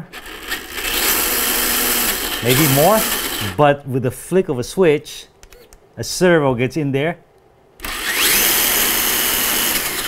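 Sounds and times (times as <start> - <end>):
rc car motor whirring: 0.2 - 3.6, 7.8 - 10.0.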